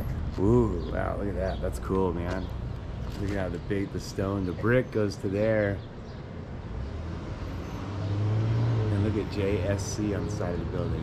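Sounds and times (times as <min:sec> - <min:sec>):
motor vehicle humming: 0:00.0 - 0:11.0.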